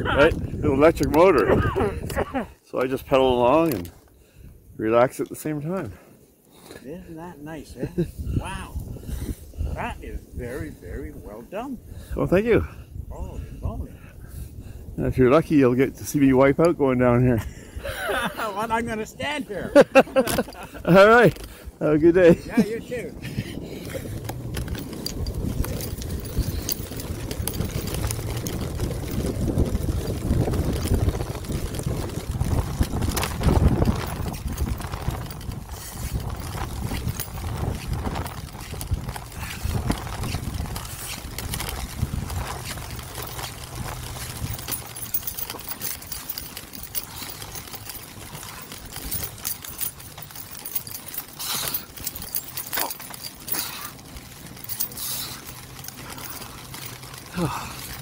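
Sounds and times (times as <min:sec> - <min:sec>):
wind on microphone: 0:00.0 - 0:02.5, 0:07.8 - 0:16.1, 0:19.8 - 0:46.2
tyres rumbling over snow: 0:00.0 - 0:58.0.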